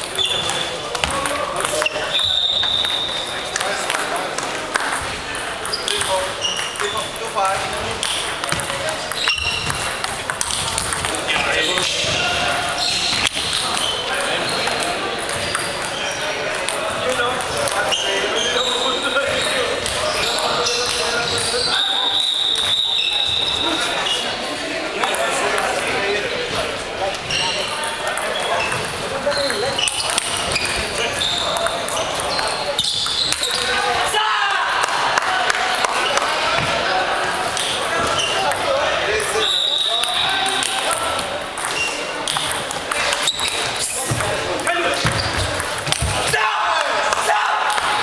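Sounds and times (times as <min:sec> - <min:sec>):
table tennis balls bouncing: 0:00.0 - 0:18.6, 0:19.2 - 0:21.6, 0:27.2 - 0:33.8, 0:35.8 - 0:48.0
echoing voices: 0:00.0 - 0:48.0.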